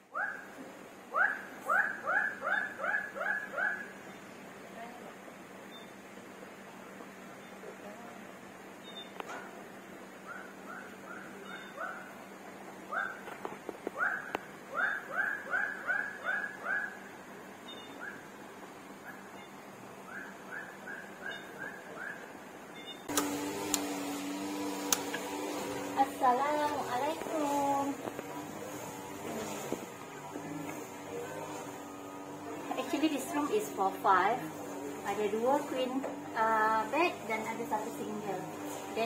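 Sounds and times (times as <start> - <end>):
steady multi-tone hum: 0.0 - 39.0
animal chirping calls: 1.1 - 4.0, 10.3 - 12.1, 14.0 - 17.1, 17.7 - 18.3, 19.1 - 22.3.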